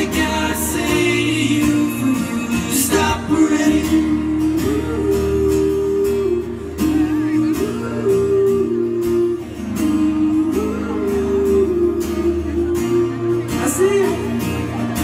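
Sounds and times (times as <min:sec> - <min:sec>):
acoustic guitars strumming: 0:00.0 - 0:15.0
live pop-rock band: 0:00.0 - 0:15.0.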